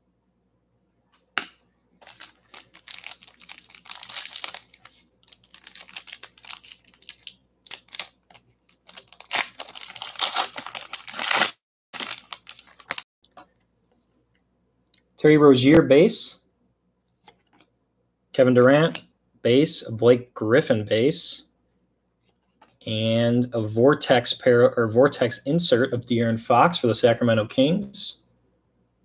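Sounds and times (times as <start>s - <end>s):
wrapper tearing and crinkling: 2.0s - 13.0s.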